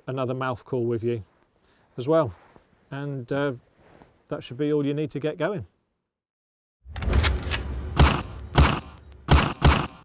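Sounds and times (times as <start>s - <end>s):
sharp gunshot-like bangs: 8.0s - 10.0s.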